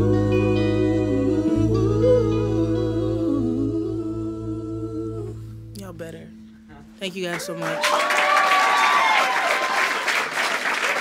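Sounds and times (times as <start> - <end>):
hummed vocal harmonies: 0.0 - 6.4
electric bass: 0.0 - 7.1
electric guitar notes: 0.0 - 7.7.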